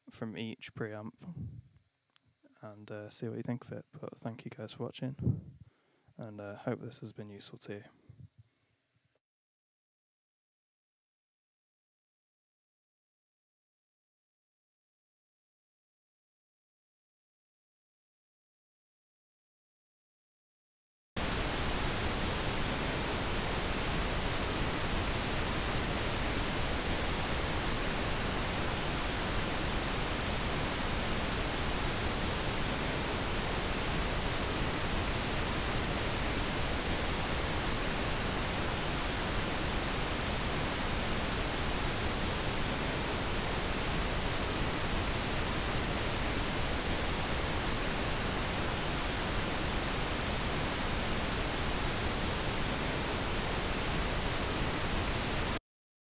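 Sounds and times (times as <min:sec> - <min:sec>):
pink noise hiss: 0:21.2 - 0:55.6.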